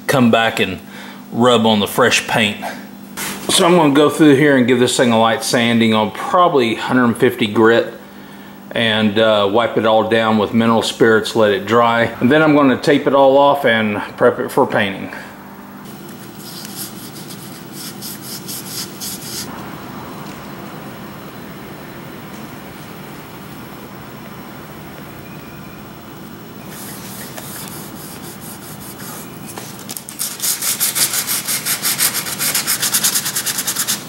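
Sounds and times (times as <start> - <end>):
sandpaper rubbing on plastic: 16.2 - 19.5, 26.7 - 34.0.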